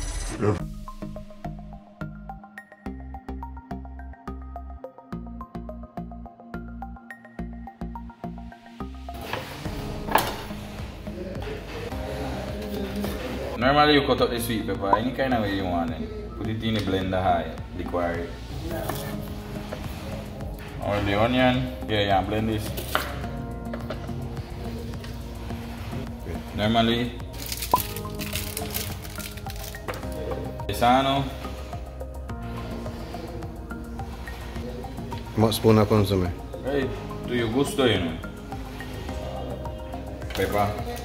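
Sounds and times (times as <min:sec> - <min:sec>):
background music: 0:00.0 - 0:41.0.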